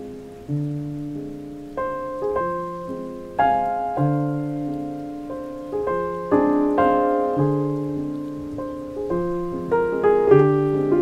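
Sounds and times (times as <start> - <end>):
piano chords ringing: 0.0 - 11.0.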